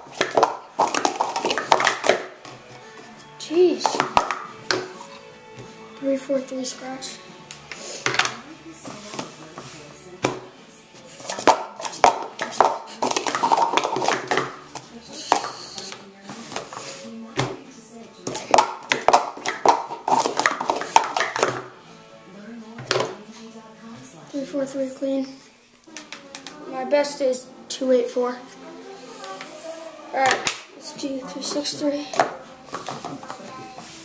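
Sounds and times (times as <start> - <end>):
plastic cups clattering: 0.0 - 5.8, 8.0 - 17.6, 18.2 - 21.8, 22.8 - 23.2, 30.2 - 34.0.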